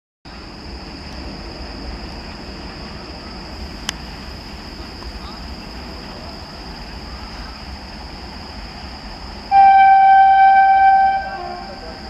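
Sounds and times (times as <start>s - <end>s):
locomotive horn honking: 9.5s - 12.0s.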